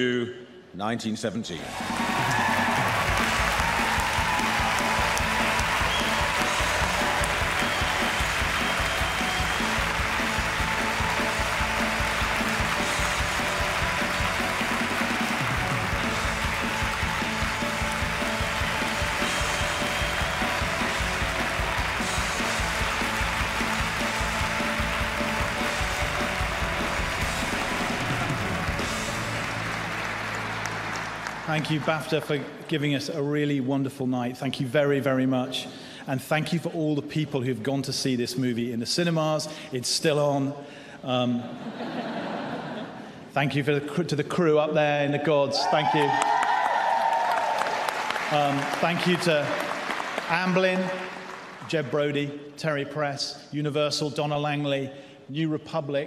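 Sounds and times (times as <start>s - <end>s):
music playing: 1.5s - 32.7s, 47.0s - 51.8s
audience applauding: 1.6s - 32.5s, 45.6s - 51.9s.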